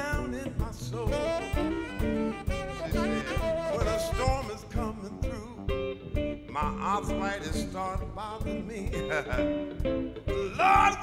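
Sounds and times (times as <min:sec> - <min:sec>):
blues band playing: 0:00.0 - 0:11.0
drums keeping a steady beat: 0:00.0 - 0:11.0
saxophone: 0:01.0 - 0:05.4.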